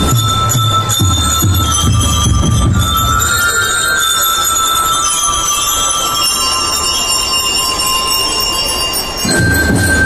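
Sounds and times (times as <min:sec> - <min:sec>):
drums: 0:00.0 - 0:04.0, 0:09.2 - 0:10.0
bell lyres ringing: 0:00.0 - 0:10.0.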